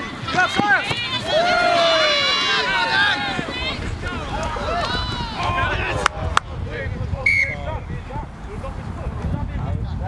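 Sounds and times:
faint shouting voices: 0.0s - 10.0s
low microphone rumble: 1.8s - 10.0s
referee whistle blast: 7.3s - 7.7s.

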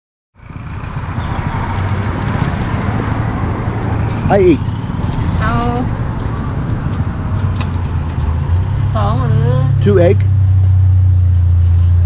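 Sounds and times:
vehicle engine rumbling: 0.4s - 12.0s.

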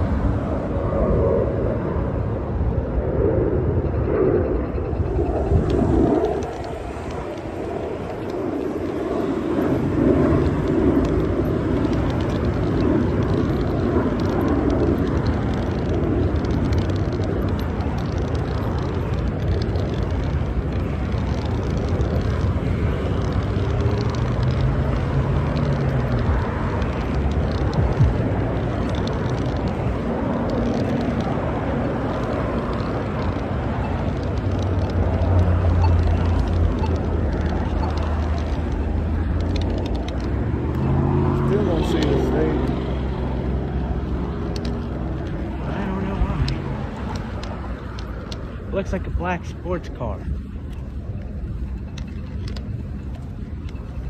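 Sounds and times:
road traffic noise: 0.0s - 54.0s.

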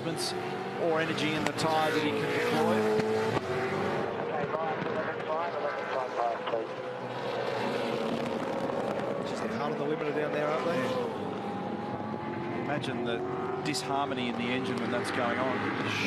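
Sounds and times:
race car engine running hard: 0.0s - 16.0s.

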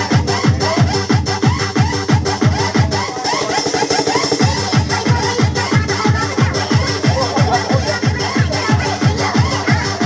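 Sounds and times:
electronic dance music: 0.0s - 10.0s
steady kick drum: 0.0s - 10.0s.

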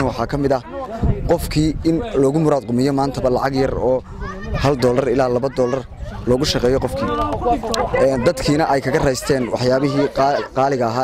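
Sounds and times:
man talking: 4.6s - 11.0s.

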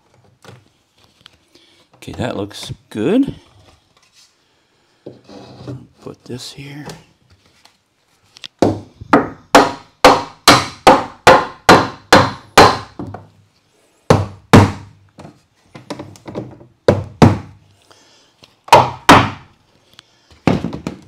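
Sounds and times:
hammer striking wooden boards: 8.6s - 13.3s, 14.1s - 15.0s, 15.8s - 17.6s, 18.7s - 19.5s.

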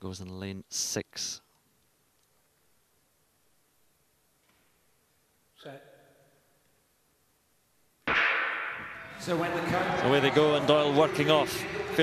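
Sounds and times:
starter's gun shot ringing: 8.1s - 9.0s.

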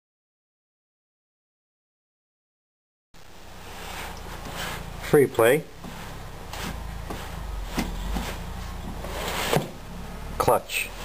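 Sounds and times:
steady low hum: 3.2s - 11.0s.

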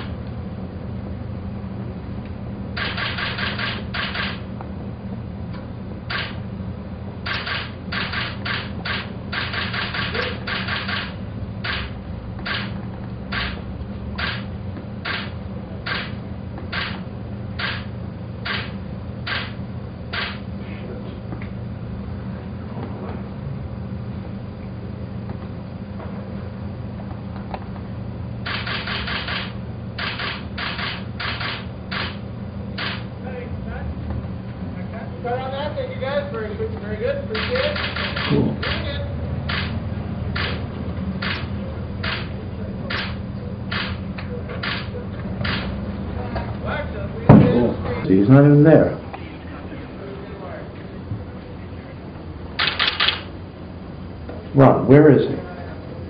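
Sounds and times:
steady low hum: 0.0s - 56.0s
camera shutter clicks: 2.8s - 4.4s, 6.1s - 6.4s, 7.3s - 11.1s, 11.7s - 11.9s, 12.5s - 12.7s, 13.3s - 13.6s, 14.2s - 14.4s, 15.1s - 15.3s, 15.9s - 16.1s, 16.7s - 17.0s, 17.6s - 17.9s, 18.5s - 18.7s, 19.3s - 20.4s, 28.5s - 32.2s, 32.8s - 33.0s, 37.4s - 38.8s, 39.5s - 39.8s, 40.4s - 40.6s, 41.2s - 42.3s, 42.9s - 44.0s, 44.6s - 45.7s, 52.6s - 53.3s.

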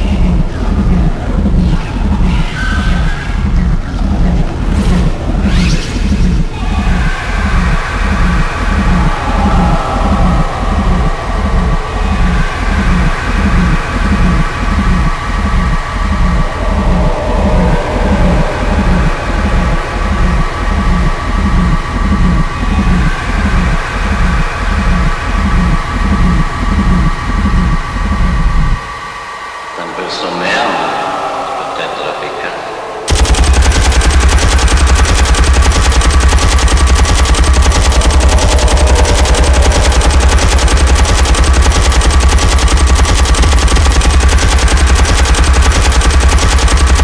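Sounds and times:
distorted kick drum: 0.0s - 28.9s, 33.1s - 47.0s
sustained synth tones: 0.0s - 47.0s
sharp electronic hits: 7.6s - 24.3s, 30.6s - 47.0s.

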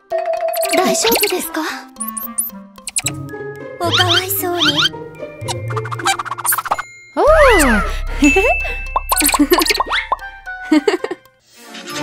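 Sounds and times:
cartoon plop sound effects: 2.0s - 3.2s, 3.8s - 7.8s, 8.4s - 10.6s.

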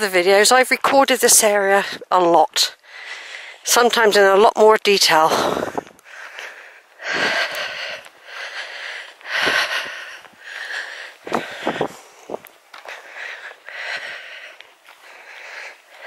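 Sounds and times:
person breathing: 2.8s - 3.7s, 5.3s - 16.0s.

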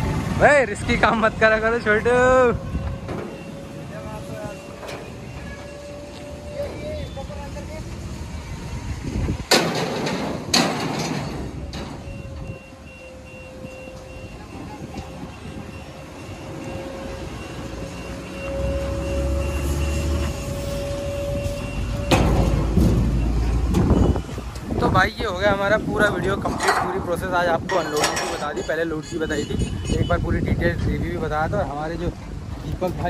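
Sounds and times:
heavy engine rumble: 0.0s - 33.0s
loud metal clanks: 9.5s - 12.2s, 26.4s - 28.8s.

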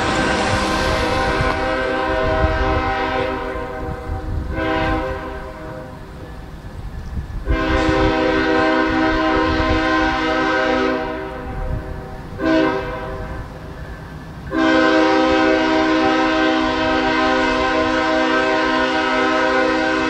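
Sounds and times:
locomotive air horn blasts: 0.0s - 6.2s, 7.4s - 13.8s, 14.5s - 20.0s
locomotive engine rumble: 0.0s - 20.0s.

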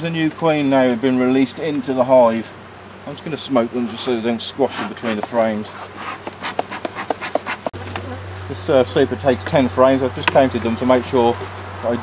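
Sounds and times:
bee smoker bellows puffing: 0.0s - 11.8s.

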